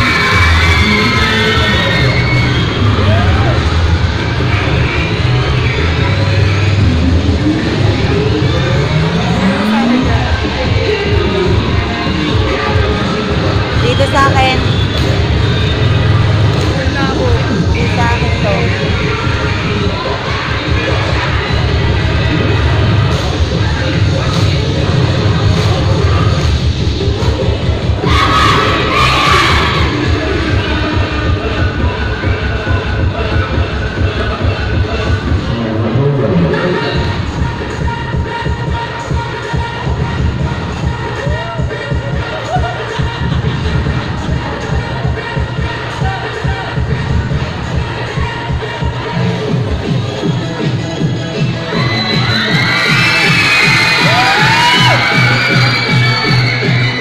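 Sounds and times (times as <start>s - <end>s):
crowd cheering and shouting: 0.0s - 26.4s, 27.5s - 32.8s, 36.2s - 57.0s
dance music with heavy bass: 0.0s - 57.0s
rising sweeps: 6.7s - 11.6s.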